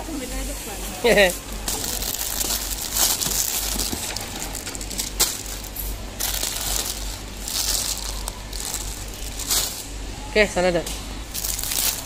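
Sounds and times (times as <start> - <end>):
plastic packets crinkling: 1.6 - 9.9, 11.3 - 12.0.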